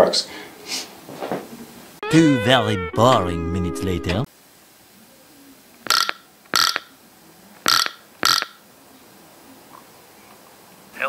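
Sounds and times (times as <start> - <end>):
field telephone buzzing: 5.9 - 6.9.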